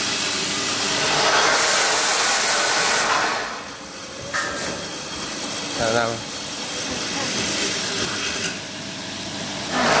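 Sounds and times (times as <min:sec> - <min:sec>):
workshop machinery running: 0:00.0 - 0:10.0.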